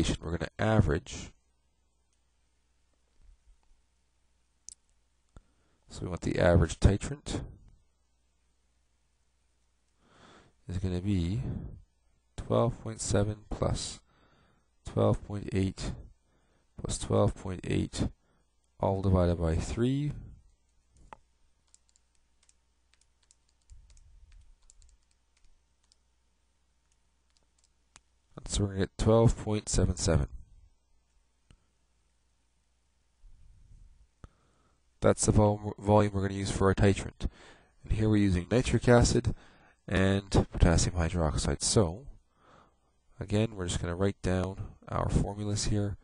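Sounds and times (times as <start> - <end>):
faint clicks: 21.0 - 26.1, 26.8 - 28.1.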